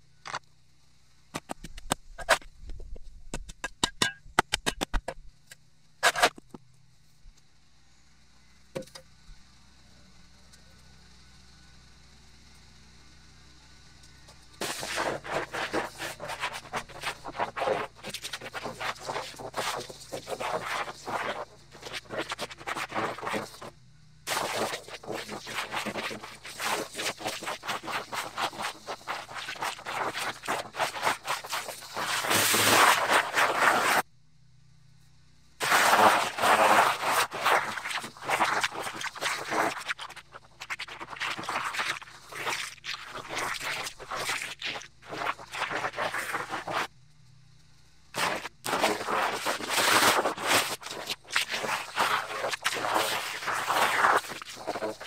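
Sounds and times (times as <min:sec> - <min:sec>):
shovel scraping dirt on concrete: 0:01.4 - 0:02.5, 0:06.0 - 0:06.4, 0:14.6 - 0:23.7, 0:24.3 - 0:34.1, 0:35.6 - 0:46.9, 0:48.2 - 0:55.0.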